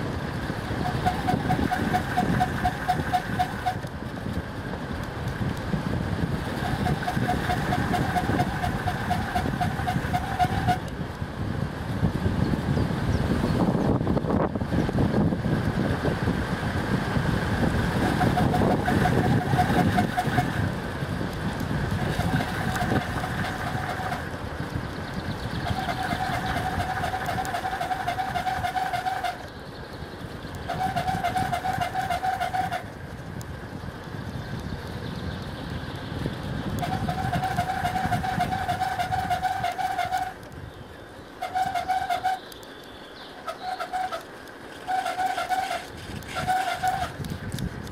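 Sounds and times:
bicycle tyre rumble on asphalt: 0:00.0 - 0:47.9
wind buffeting microphone: 0:00.0 - 0:47.9
bicycle freewheel ratcheting: 0:00.8 - 0:04.0, 0:06.6 - 0:10.9, 0:18.0 - 0:29.5, 0:43.4 - 0:47.9.

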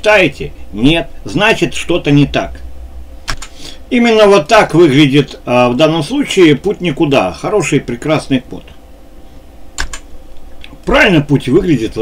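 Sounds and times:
computer keyboard clicks: 0:03.3 - 0:03.6, 0:09.8 - 0:10.0.

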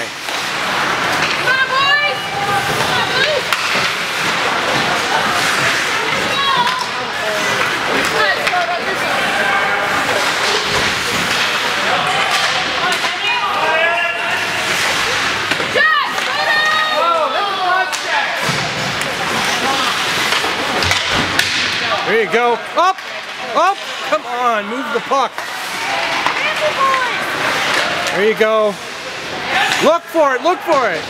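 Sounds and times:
din of hockey play and crowd: 0:00.0 - 0:31.0.

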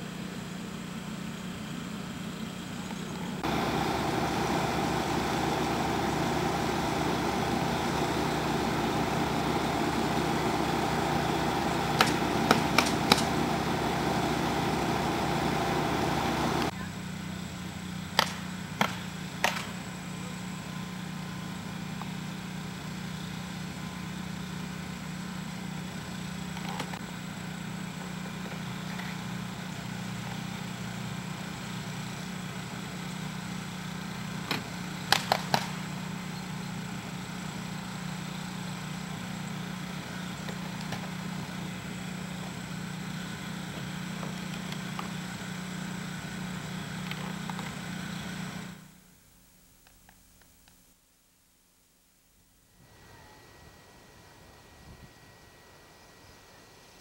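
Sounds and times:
low mechanical hum: 0:00.0 - 0:57.0.

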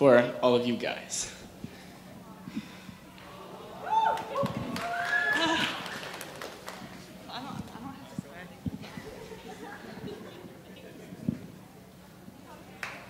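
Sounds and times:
people calling out: 0:03.2 - 0:06.2.

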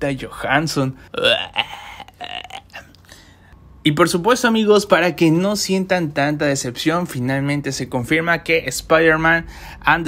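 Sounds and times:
man speaking: 0:00.0 - 0:02.6, 0:03.8 - 0:10.0
throaty vocal grunt: 0:01.1 - 0:03.0.

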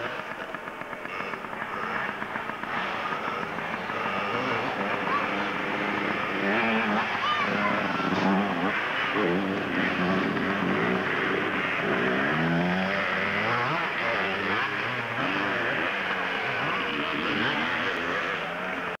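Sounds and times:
small motorbike engine revving: 0:00.0 - 0:19.0.

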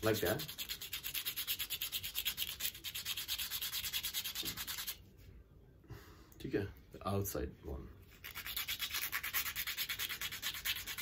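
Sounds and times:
bead rubbing on sandpaper: 0:00.0 - 0:05.0, 0:08.1 - 0:11.0.

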